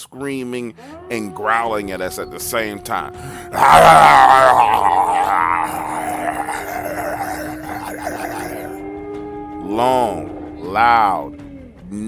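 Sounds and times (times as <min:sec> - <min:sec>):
creature scream and growling: 0:02.6 - 0:08.8.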